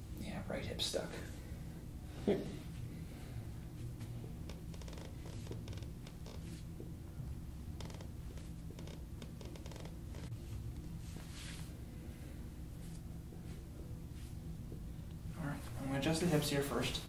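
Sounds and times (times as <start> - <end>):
low steady hum: 0.0 - 17.0
light creaks: 4.5 - 6.6, 7.8 - 10.4
hands rubbing on fabric: 8.3 - 11.8.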